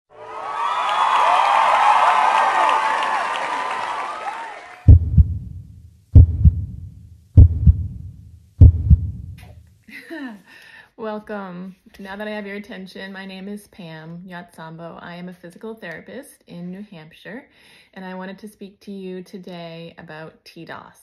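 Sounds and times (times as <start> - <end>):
crowd cheering: 0.1 - 5.0
loud low double thumps: 4.9 - 9.6.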